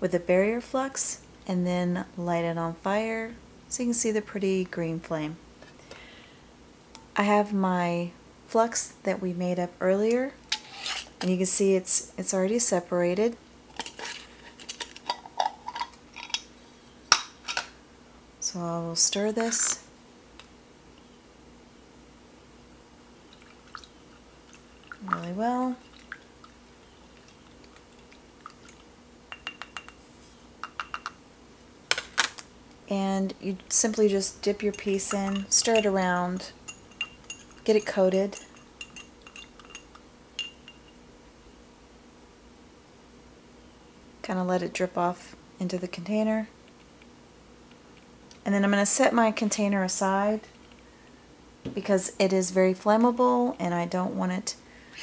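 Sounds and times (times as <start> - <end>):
metal tweezers clinking on glass jar: 34.6 - 41.0.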